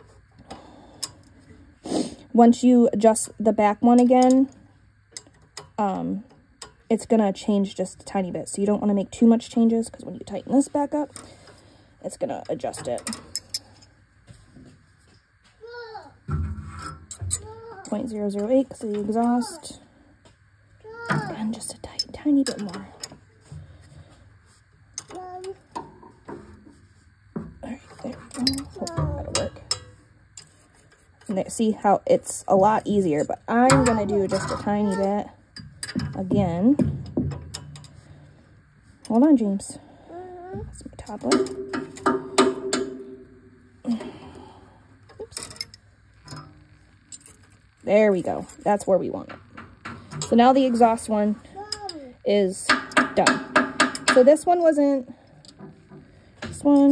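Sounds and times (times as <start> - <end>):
knocks with ringing tone: 41.3 - 43.6.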